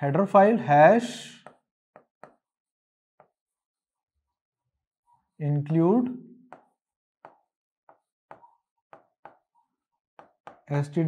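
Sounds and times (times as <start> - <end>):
stylus tapping on screen: 6.5 - 9.5.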